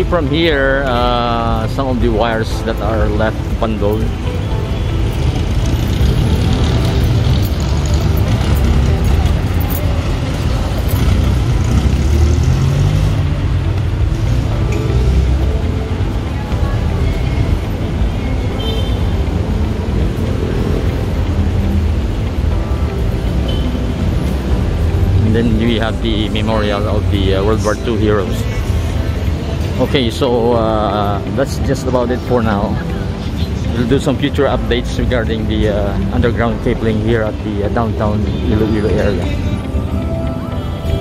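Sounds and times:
light background music: 0.0s - 41.0s
street traffic rumble: 0.0s - 41.0s.

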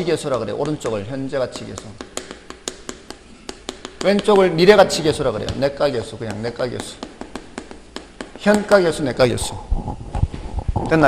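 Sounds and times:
chalk tapping on chalkboard: 0.0s - 9.4s.

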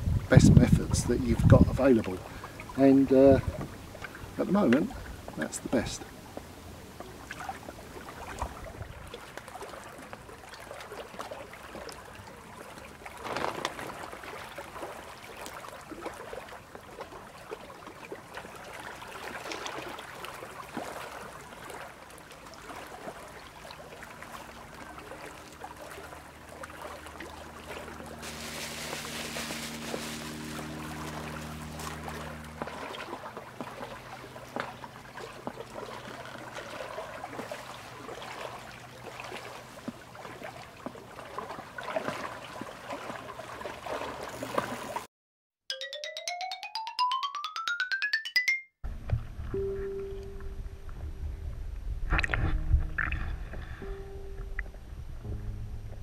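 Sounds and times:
water lapping at gravel shore: 1.1s - 45.1s
low steady hum: 24.0s - 35.9s, 48.9s - 56.0s
plastic bag crinkling: 28.2s - 30.5s.

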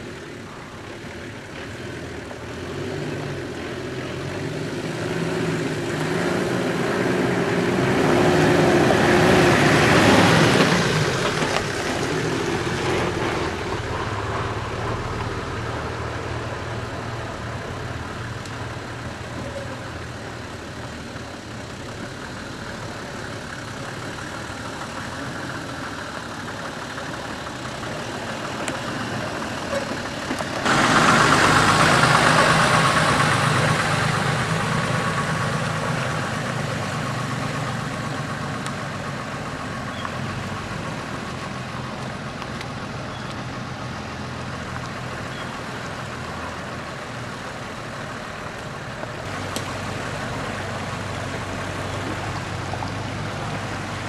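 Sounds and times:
vehicle engine running at low revs: 0.0s - 54.0s.

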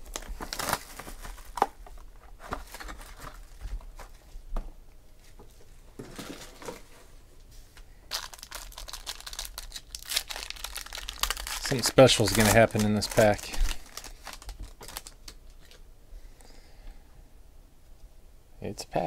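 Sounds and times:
wrapper crinkling and tearing: 0.0s - 4.1s, 8.1s - 15.8s.

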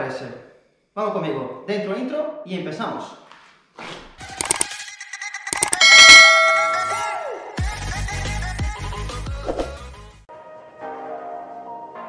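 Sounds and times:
quick clicks: 4.3s - 4.7s, 5.5s - 5.8s
bright bell-like chime: 5.6s - 7.4s.

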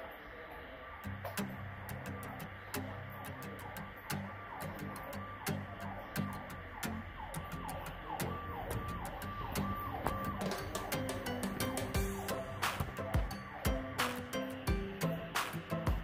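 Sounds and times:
music from laptop speaker: 0.1s - 16.0s
siren-like falling tone: 1.9s - 15.5s.

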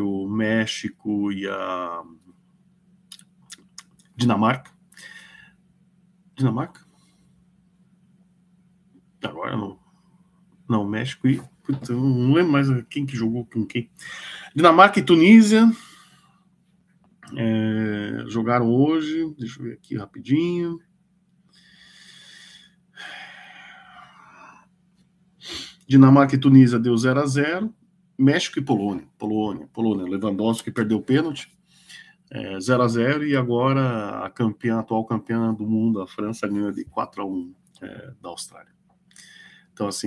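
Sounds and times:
low steady hum: 0.0s - 40.0s
man breathing: 4.9s - 5.6s, 14.0s - 14.6s, 15.7s - 16.5s, 21.5s - 24.7s, 31.6s - 32.2s, 39.1s - 39.8s.

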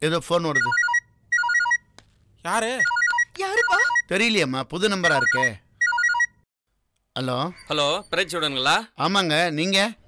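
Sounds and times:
phone ringtone beeps: 0.5s - 1.9s, 2.8s - 4.1s, 5.0s - 6.4s.

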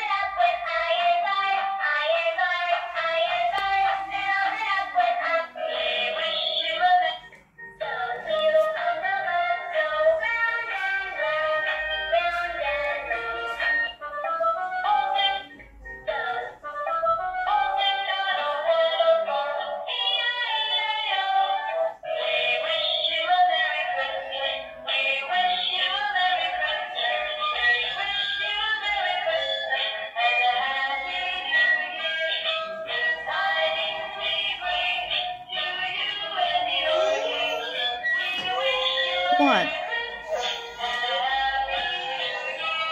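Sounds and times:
electronic songs from toy speaker: 0.0s - 42.9s.

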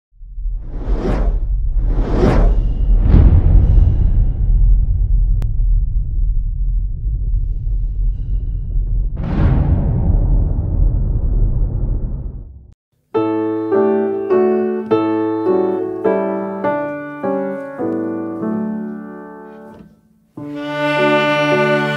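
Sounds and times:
deep sustained rumble: 0.1s - 12.8s
whooshes: 0.3s - 12.8s.

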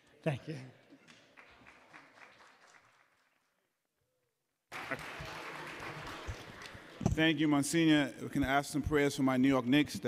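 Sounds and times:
applause in a large chamber: 1.0s - 3.8s, 4.7s - 7.5s.

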